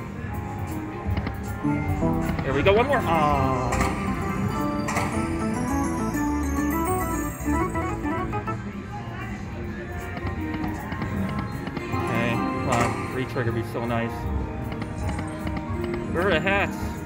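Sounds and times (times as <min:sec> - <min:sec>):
slot machine bonus music: 0:01.6 - 0:08.9.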